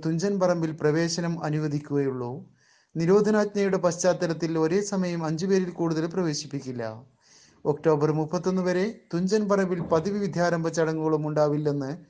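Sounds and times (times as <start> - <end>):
man narrating: 0.0 - 2.4, 3.0 - 7.0, 7.7 - 12.0.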